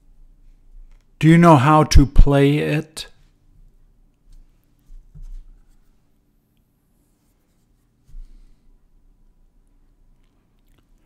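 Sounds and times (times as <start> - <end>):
soft low knocks and rustles: 4.3 - 6.1.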